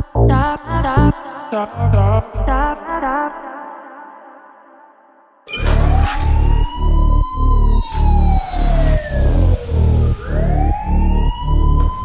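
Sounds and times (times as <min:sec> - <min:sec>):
siren-like wail: 0:05.5 - 0:12.0.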